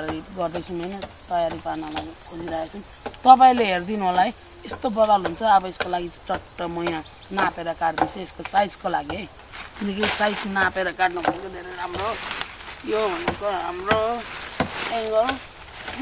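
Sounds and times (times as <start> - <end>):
insects droning: 0.0 - 16.0
person talking: 0.0 - 16.0.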